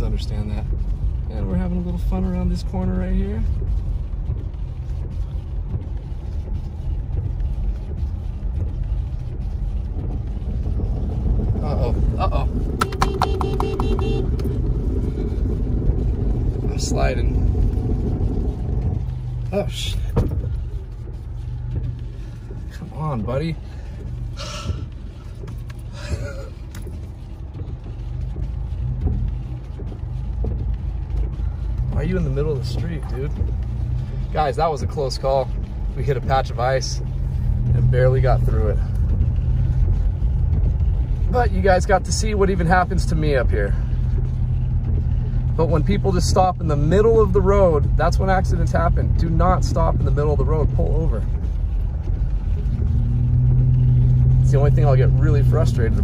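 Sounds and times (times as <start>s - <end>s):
car engine and tyre rumble: 0.0s - 56.0s
rapid run of clicks: 3.4s - 56.0s.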